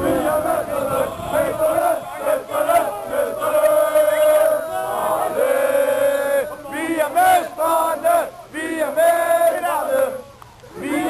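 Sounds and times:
crowd chanting in unison: 0.0 - 11.0.

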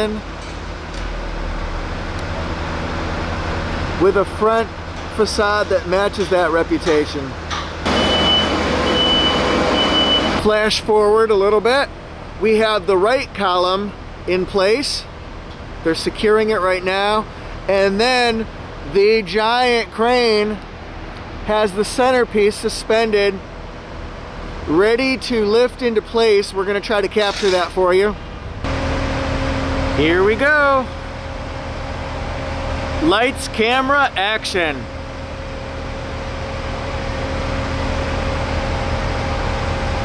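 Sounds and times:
machinery noise: 0.0 - 13.7, 24.4 - 40.0
back-up alarm beeps: 7.9 - 10.4.

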